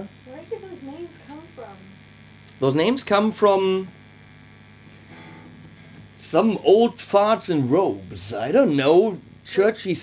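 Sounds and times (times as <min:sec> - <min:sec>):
amplifier electrical hum: 0:00.0 - 0:10.0.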